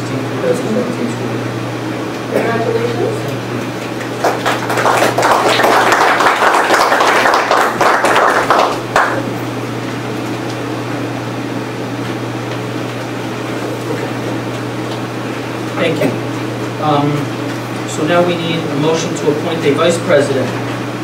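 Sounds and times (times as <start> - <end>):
steady low hum: 0.0 - 21.0
people applauding: 3.8 - 9.4.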